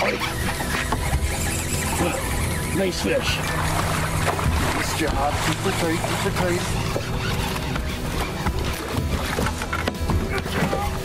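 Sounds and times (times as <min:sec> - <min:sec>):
fishing reel drag whining: 0:00.0 - 0:09.9.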